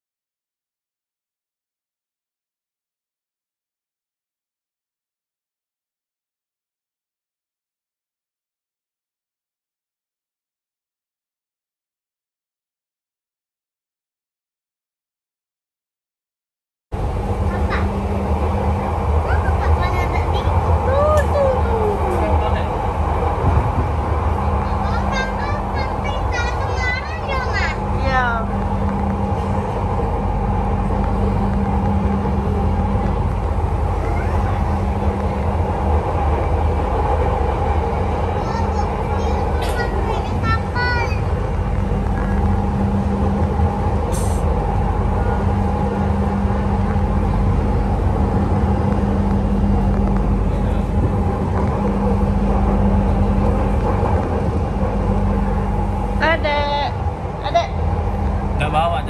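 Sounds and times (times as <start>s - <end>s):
constant low hum: 17.0s - 59.0s
train wheels on rail: 17.0s - 59.0s.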